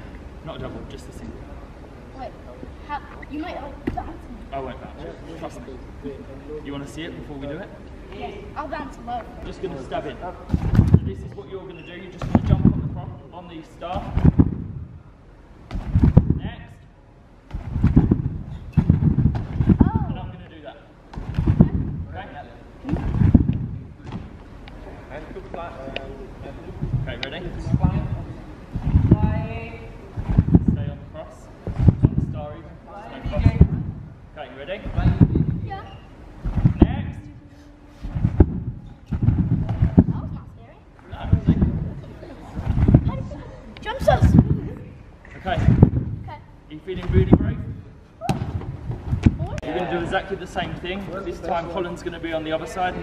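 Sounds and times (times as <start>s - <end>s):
heavy thumps on trampoline: 10.5s - 13.2s, 13.8s - 15.0s, 15.6s - 16.7s, 17.5s - 20.5s, 21.1s - 22.3s, 22.9s - 24.4s, 26.8s - 29.6s, 30.2s - 31.0s, 31.6s - 34.2s, 34.8s - 37.2s, 38.0s - 40.5s, 41.2s - 44.8s, 45.4s - 46.3s, 46.9s - 49.6s.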